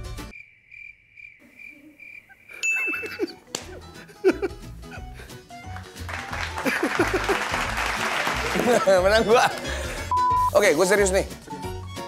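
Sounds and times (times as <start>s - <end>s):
background music: 0.0s - 0.3s, 2.9s - 12.0s
cricket chirps: 0.3s - 3.3s.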